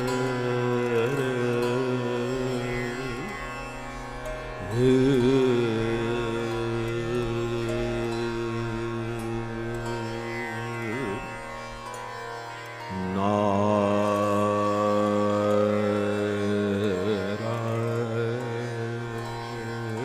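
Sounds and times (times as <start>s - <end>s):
harmonium: 0.0s - 20.0s
tanpura drone: 0.0s - 20.0s
man singing slow alap: 4.7s - 10.2s.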